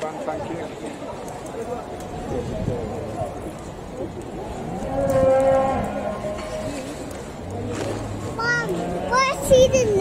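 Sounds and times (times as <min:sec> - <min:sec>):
cow mooing: 0:04.7 - 0:06.9.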